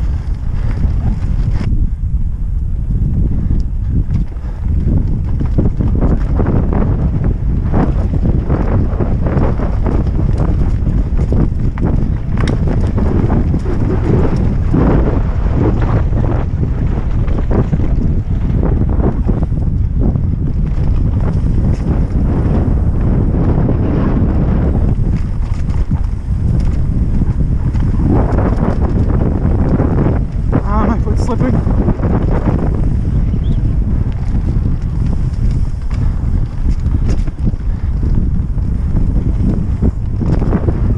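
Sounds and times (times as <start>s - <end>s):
bike rattling over rocks: 0.0s - 1.8s, 3.1s - 40.9s
wind buffeting microphone: 0.0s - 40.9s.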